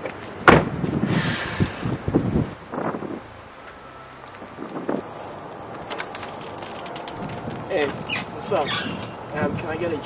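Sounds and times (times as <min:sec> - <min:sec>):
wind buffeting microphone: 0:00.6 - 0:03.5, 0:04.4 - 0:10.0.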